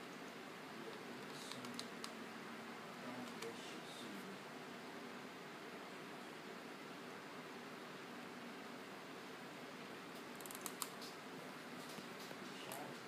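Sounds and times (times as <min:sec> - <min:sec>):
faint room hiss: 0:00.0 - 0:13.0.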